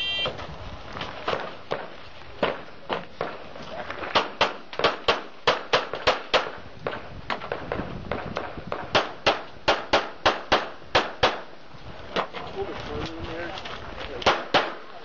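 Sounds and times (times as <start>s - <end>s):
handgun shots: 4.2s - 6.6s, 8.8s - 11.4s, 14.2s - 14.8s.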